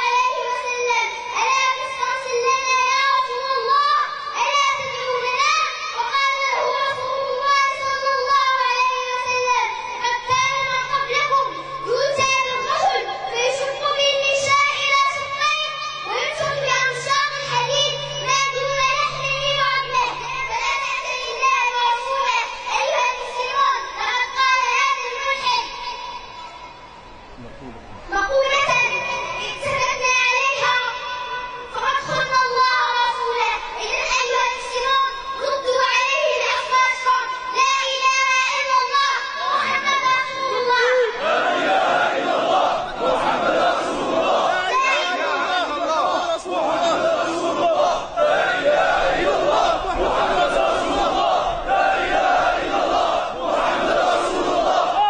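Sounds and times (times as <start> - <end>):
girl chanting into microphone: 0.0 - 26.6, 28.1 - 42.0, 44.5 - 48.2
steady ringing tone: 15.7 - 23.9.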